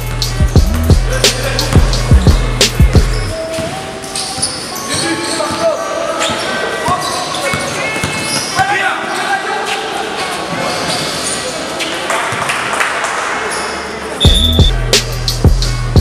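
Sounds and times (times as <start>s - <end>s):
music with heavy bass beat: 0.0s - 3.4s, 14.2s - 16.0s
players' voices: 0.8s - 15.4s
basketball bouncing on court: 6.2s - 8.6s.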